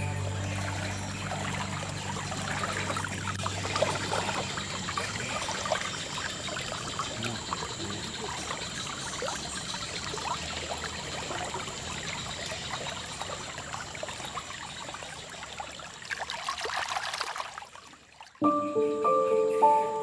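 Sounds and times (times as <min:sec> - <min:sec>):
aquarium water splashing: 0:00.0 - 0:18.4.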